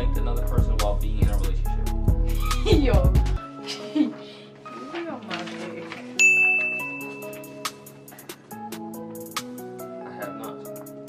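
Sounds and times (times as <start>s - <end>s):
background music: 0.0s - 11.0s
bell-like ding: 6.2s - 7.6s.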